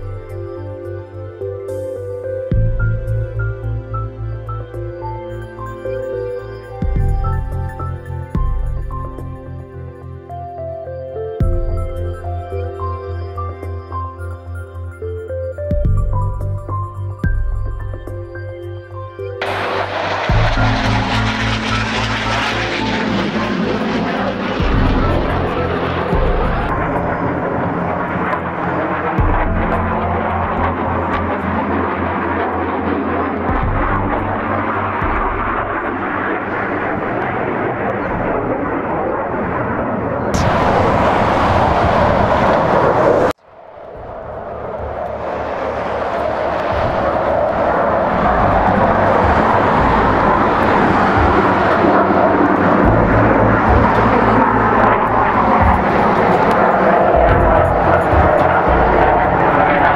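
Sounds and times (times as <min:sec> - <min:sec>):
background music: 0:00.0 - 0:39.7, 0:44.1 - 0:59.9
jet engine roar: 0:19.2 - 0:59.9.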